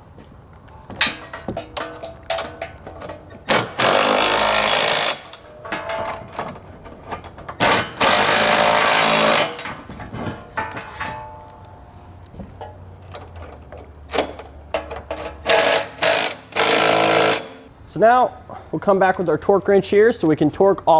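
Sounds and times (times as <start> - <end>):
impact wrench running: 3.4 - 5.5, 7.6 - 9.7, 15.2 - 17.7.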